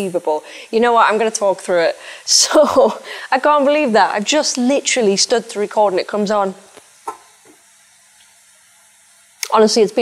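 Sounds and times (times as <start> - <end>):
hiss of flowing water: 0.0 - 10.0.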